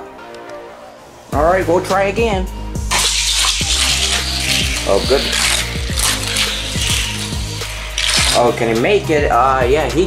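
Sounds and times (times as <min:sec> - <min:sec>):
music with deep beat: 0:02.7 - 0:08.6
toy car rattling on plastic track: 0:02.9 - 0:08.8.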